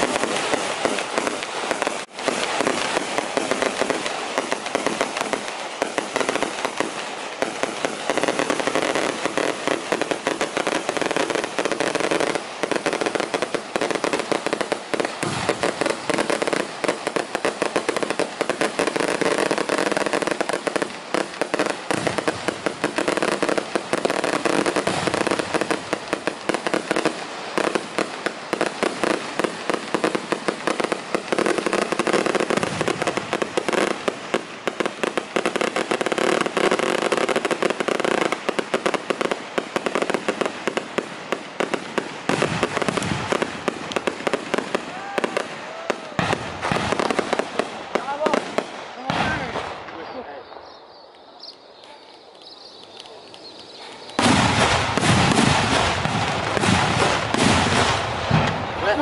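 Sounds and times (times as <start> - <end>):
firecrackers crackling: 0.0 - 59.0.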